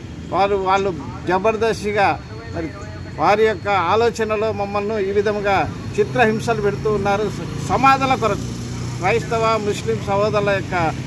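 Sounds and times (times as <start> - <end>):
man speaking: 0.3 - 11.0.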